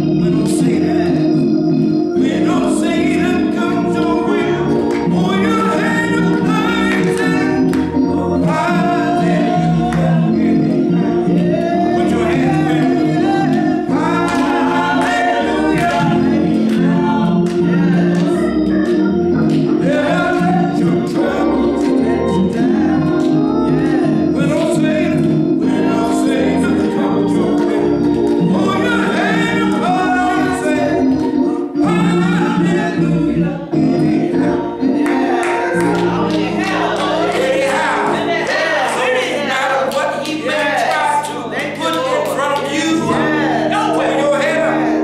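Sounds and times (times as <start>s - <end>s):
organ chords: 0.0s - 45.0s
women singing gospel: 0.0s - 45.0s.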